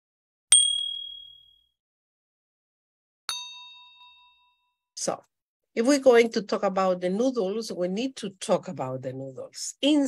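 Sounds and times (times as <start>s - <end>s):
bright bell ding: 0.5s - 1.7s, 3.3s - 4.7s.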